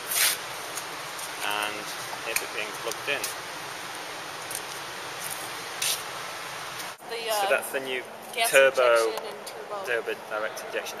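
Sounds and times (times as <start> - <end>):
sharp rustle: 0.0 - 2.1, 4.5 - 6.1
steady background hiss: 0.0 - 11.0.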